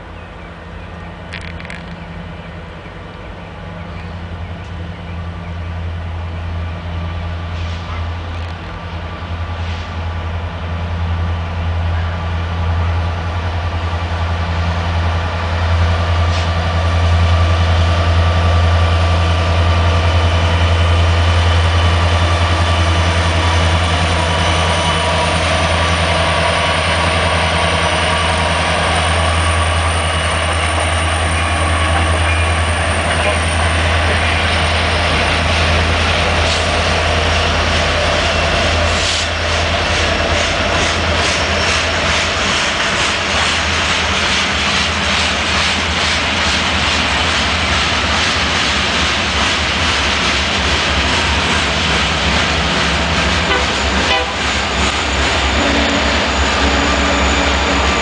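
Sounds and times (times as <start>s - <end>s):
locomotive engine drone: 0.0s - 58.0s
train wheels rolling on rails: 0.0s - 58.0s.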